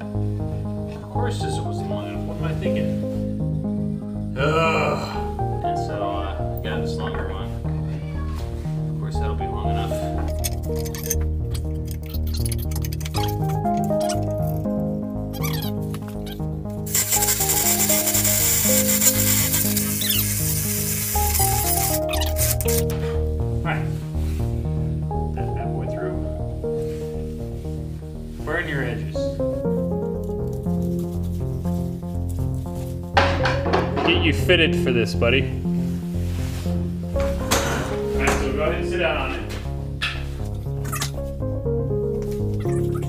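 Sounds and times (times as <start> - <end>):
instrumental background music: 0.0 - 43.0.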